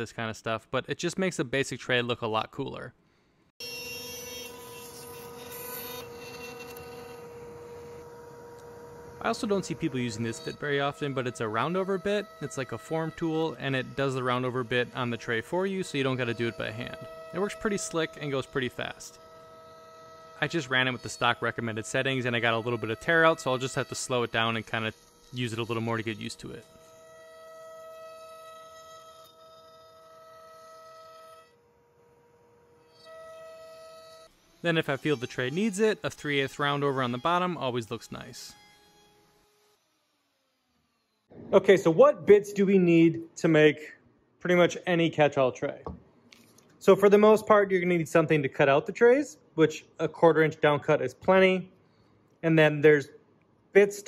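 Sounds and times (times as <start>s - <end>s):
router spindle high whine: 3.6s - 41.7s.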